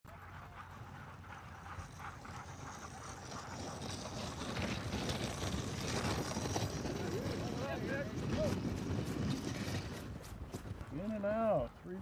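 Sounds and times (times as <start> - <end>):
sled running over packed snow: 0.1 - 12.0.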